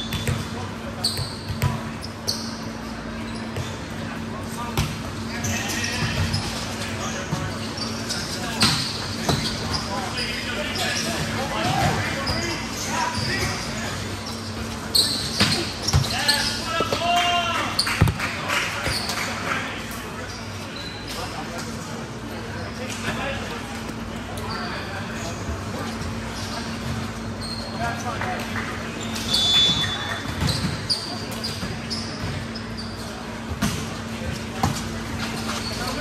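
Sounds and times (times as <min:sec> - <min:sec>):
players calling and shouting: 0:00.0 - 0:21.4
volleyball hits echoing: 0:16.7 - 0:19.0.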